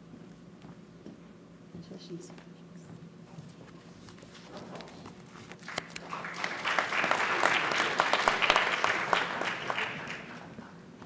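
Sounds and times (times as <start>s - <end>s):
audience clapping: 5.6s - 10.7s.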